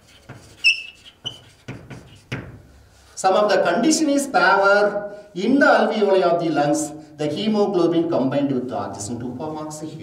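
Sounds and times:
chalk squeak: 0:00.0 - 0:02.3
chalk tapping on chalkboard: 0:00.0 - 0:02.7.

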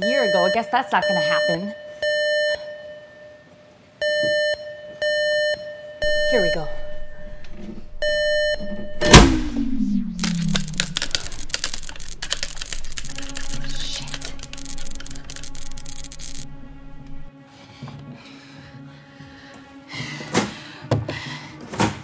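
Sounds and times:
beeping alarm: 0:00.0 - 0:03.3, 0:04.0 - 0:17.3
falling whine: 0:06.0 - 0:17.3
electrical crackling and hissing: 0:08.6 - 0:17.3
music: 0:10.3 - 0:22.0.

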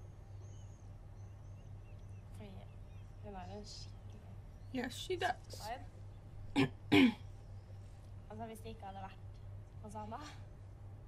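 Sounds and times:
woman clearing her throat: 0:06.6 - 0:07.2.

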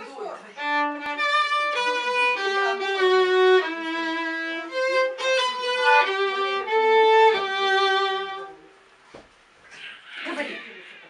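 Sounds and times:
violin note: 0:00.6 - 0:08.7.

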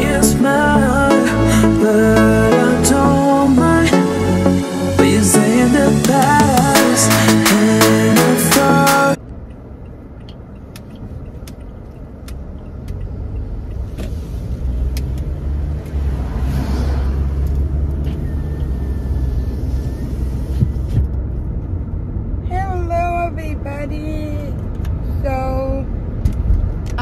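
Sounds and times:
car engine and road rumble: 0:00.0 - 0:27.0
light ticks: 0:09.3 - 0:13.9
woman speaking: 0:22.5 - 0:24.5, 0:25.2 - 0:25.8.

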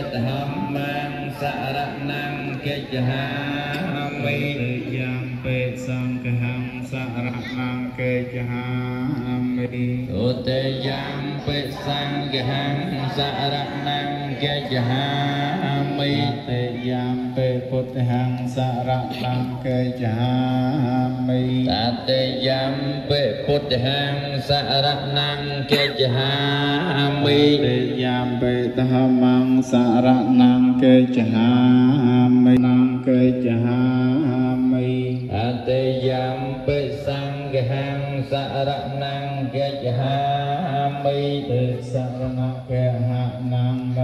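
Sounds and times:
crowd chanting in unison: 0:00.0 - 0:44.0.

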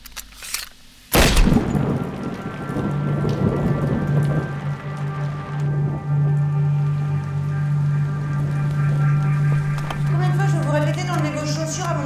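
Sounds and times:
heavy rainfall: 0:01.1 - 0:12.0
low music drone: 0:01.1 - 0:12.0
thunder crack: 0:01.1 - 0:12.0.

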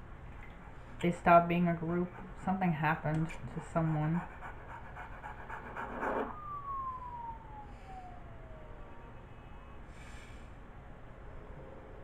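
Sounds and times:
siren winding down: 0:05.9 - 0:12.0.

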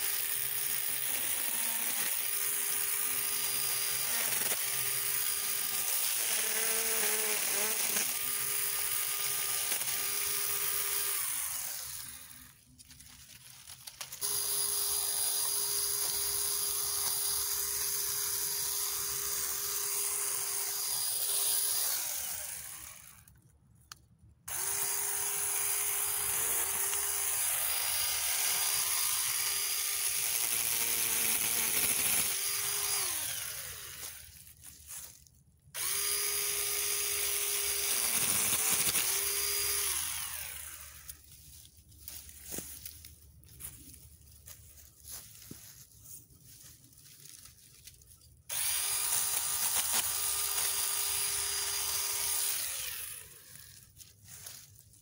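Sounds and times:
mini chainsaw whining: 0:00.0 - 0:12.7, 0:13.9 - 0:23.3, 0:24.5 - 0:35.1, 0:35.7 - 0:41.5, 0:48.4 - 0:54.8.

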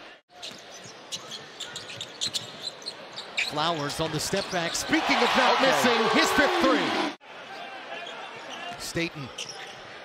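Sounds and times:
arena crowd noise: 0:03.0 - 0:10.0.

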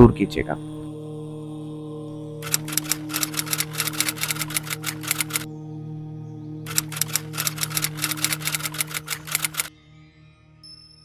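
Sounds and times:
typewriter key clicks: 0:02.4 - 0:05.5, 0:06.7 - 0:09.7.

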